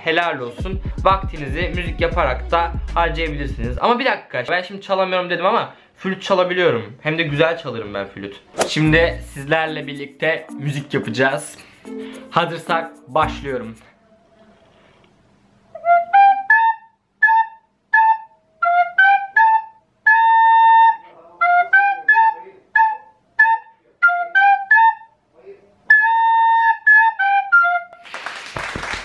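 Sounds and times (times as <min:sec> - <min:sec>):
recorder playing a simple tune: 0:08.9 - 0:13.8.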